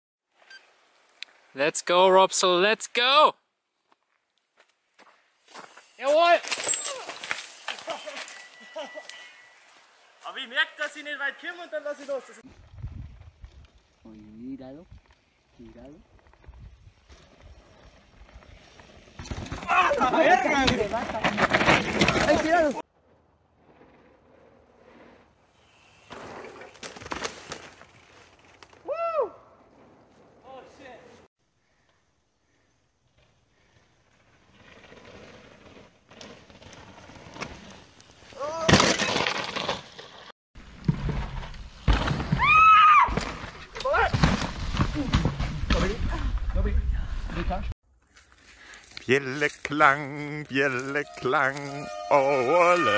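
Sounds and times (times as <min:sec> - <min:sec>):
bike tyres crunching on snow: 0:03.7 - 0:52.9
person shouting: 0:19.7 - 0:20.6, 0:28.9 - 0:29.4, 0:38.4 - 0:38.7, 0:51.2 - 0:52.9.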